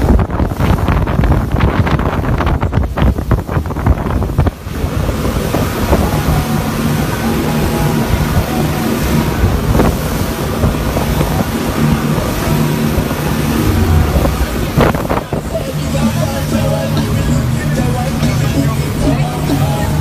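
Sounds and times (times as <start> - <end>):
wind buffeting microphone: 0.0 - 16.2
rushing water: 0.0 - 20.0
speedboat engine running: 0.0 - 20.0.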